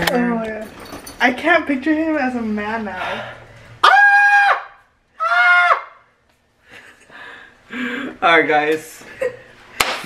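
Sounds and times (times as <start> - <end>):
man screaming: 3.8 - 6.0.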